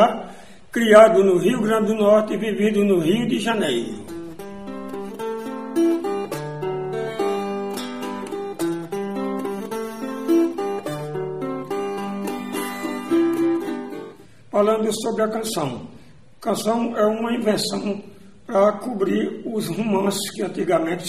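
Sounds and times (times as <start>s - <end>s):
acoustic guitar picking: 4.0s - 14.4s.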